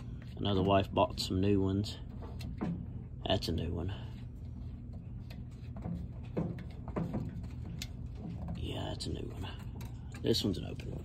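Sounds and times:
plastic bottles knocking: 5.6s - 9.1s.

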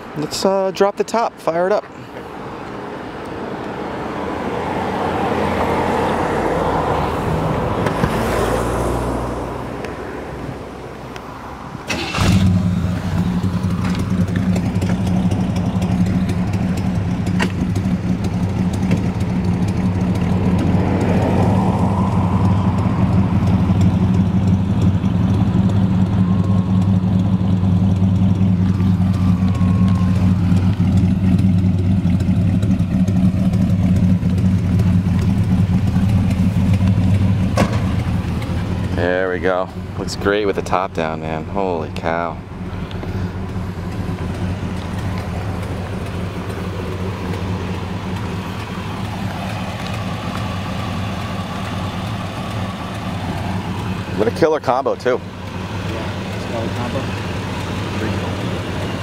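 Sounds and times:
car engine starting and idling: 0.0s - 59.0s.

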